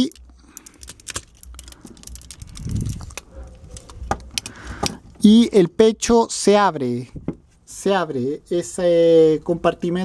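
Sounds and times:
plastic toy clicks and rattles: 0.0s - 4.5s.

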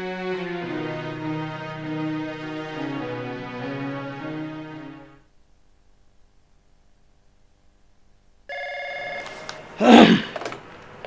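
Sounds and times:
desk telephone ringing: 8.5s - 9.8s.

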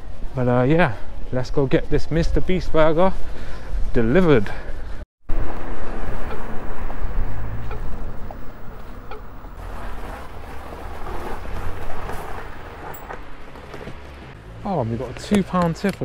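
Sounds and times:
wind buffeting microphone: 5.3s - 12.8s
scooter road rumble: 5.3s - 16.0s.

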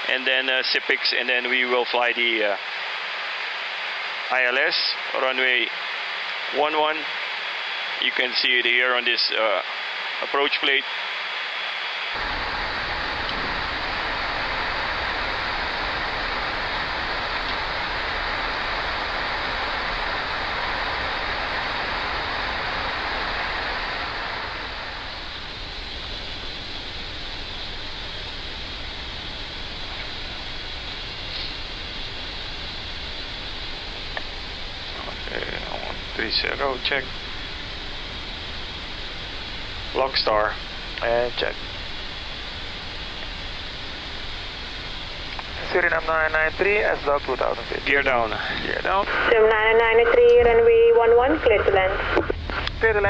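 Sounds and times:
rush of air in aircraft cockpit: 12.2s - 50.6s, 51.2s - 53.0s.

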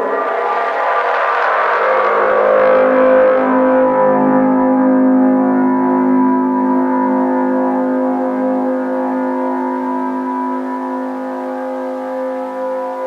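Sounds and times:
electronic droning chord: 0.0s - 13.0s.

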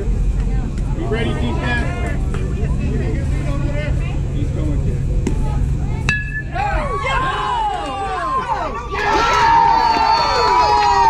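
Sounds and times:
spectators chatting: 0.0s - 11.0s
metal bat hitting ball: 6.1s - 6.6s
spectators yelling: 6.5s - 11.0s.

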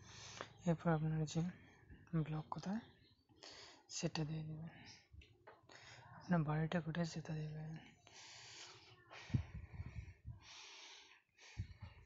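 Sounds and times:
person breathing into microphone: 8.2s - 12.0s.

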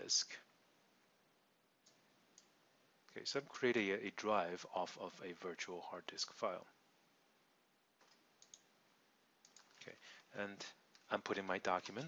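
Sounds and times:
computer mouse clicks: 8.0s - 8.7s, 9.4s - 10.0s.

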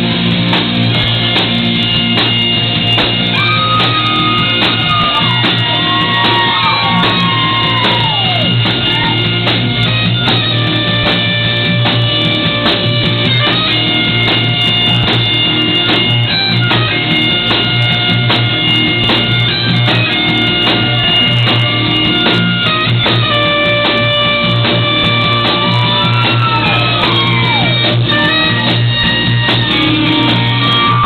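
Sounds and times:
drum kit: 0.0s - 31.0s
electric guitar: 0.0s - 31.0s
bagpipes playing a melody: 9.1s - 31.0s.

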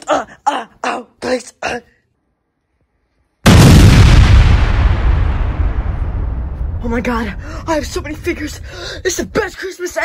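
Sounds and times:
explosion boom with deep rumble: 3.4s - 9.1s.

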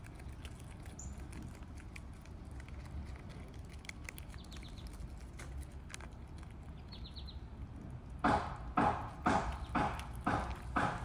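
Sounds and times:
chipmunk gnawing peanut shell: 0.0s - 11.0s.

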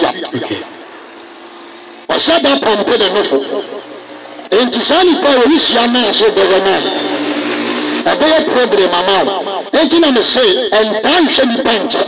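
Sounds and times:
man's amplified speech: 0.0s - 0.8s, 2.1s - 7.2s, 8.0s - 12.0s
vehicle engine running: 0.0s - 9.0s
road traffic noise: 0.0s - 12.0s.

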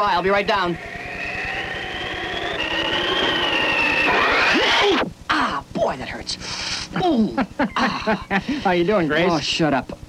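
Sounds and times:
jet-like rush with high whine: 0.0s - 5.1s.

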